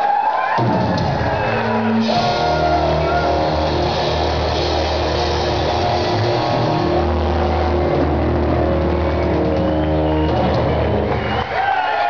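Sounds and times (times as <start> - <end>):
distorted electric guitars: 0.6 - 11.4
drums and cymbals: 0.6 - 11.6
bass guitar ringing: 1.0 - 11.2.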